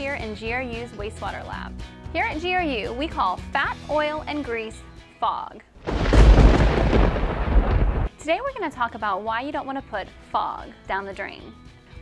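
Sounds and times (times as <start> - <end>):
deep thunder-like boom: 5.8 - 8.1.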